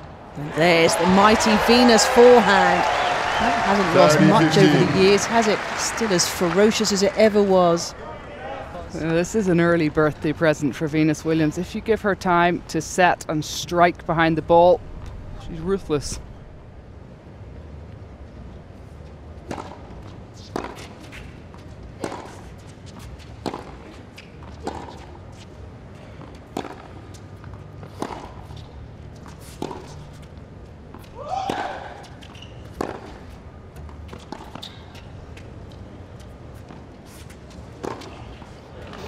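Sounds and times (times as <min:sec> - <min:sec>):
tennis ball bouncing: 0:19.4 - 0:25.4, 0:26.2 - 0:39.0
racket striking tennis ball: 0:22.0 - 0:22.5.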